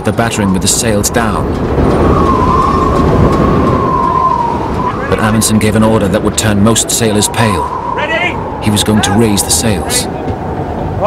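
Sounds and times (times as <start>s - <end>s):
storm wind howling: 0.0s - 11.0s.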